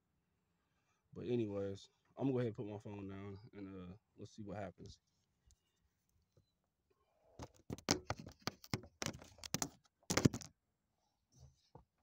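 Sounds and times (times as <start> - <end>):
clicks and knocks on microphone: 7.4 - 10.5
smartphone being handled: 7.4 - 10.5.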